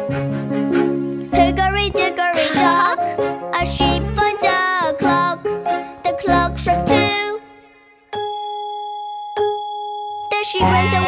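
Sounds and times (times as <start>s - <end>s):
children's song music: 0.0s - 11.0s.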